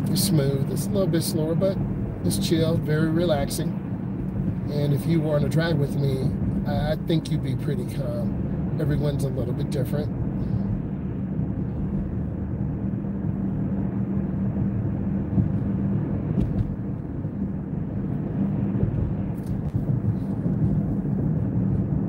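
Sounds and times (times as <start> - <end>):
car cabin road and engine noise: 0.0 - 22.0
low hum: 0.0 - 22.0.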